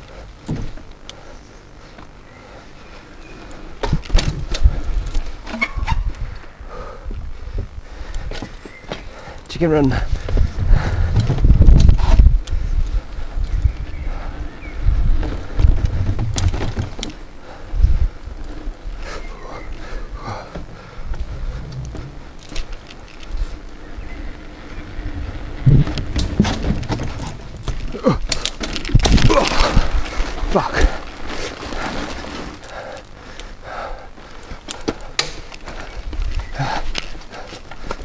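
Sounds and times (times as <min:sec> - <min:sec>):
bike tyres rumbling on wood: 0:00.0 - 0:38.0.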